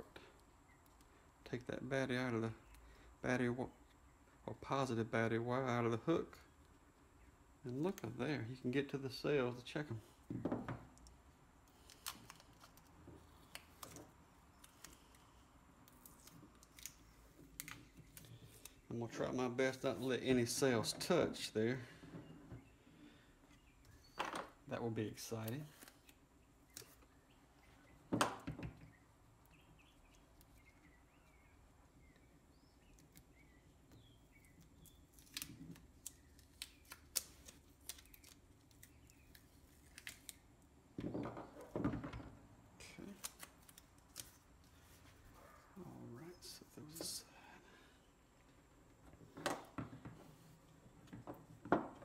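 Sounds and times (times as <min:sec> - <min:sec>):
faint bird chirps: 0:28.8 - 0:35.2.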